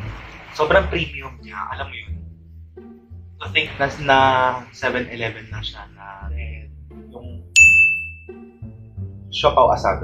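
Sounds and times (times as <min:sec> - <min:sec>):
soft background music: 0:00.0 - 0:10.0
bright ding sound effect: 0:07.6 - 0:08.4.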